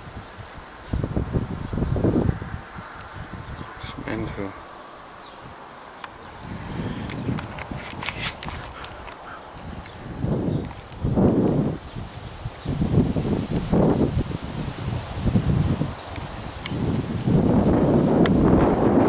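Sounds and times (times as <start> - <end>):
wind buffeting microphone: 0.0 - 19.0
light clicks: 7.0 - 11.6, 15.9 - 18.8.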